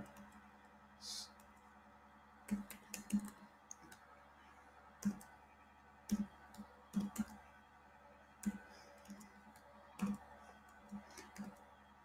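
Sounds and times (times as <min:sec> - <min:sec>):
computer keyboard typing: 0:02.5 - 0:04.1, 0:06.1 - 0:07.4, 0:08.4 - 0:11.7.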